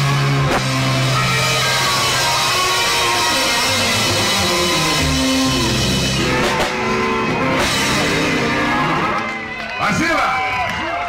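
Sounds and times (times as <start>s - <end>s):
live rock band playing: 0.0s - 9.9s
electric guitar: 0.0s - 10.5s.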